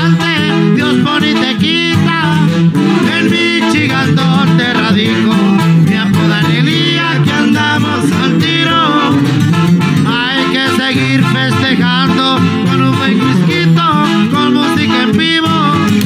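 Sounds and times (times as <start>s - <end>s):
man singing into a microphone: 0.0s - 16.0s
strummed acoustic guitar: 0.0s - 16.0s
tuba bass line: 0.0s - 16.0s.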